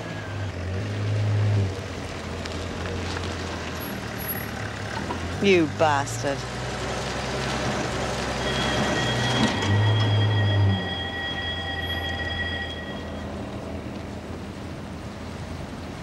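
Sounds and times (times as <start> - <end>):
car engine rumble: 0.0 - 16.0
high-pitched squeal: 7.6 - 13.9.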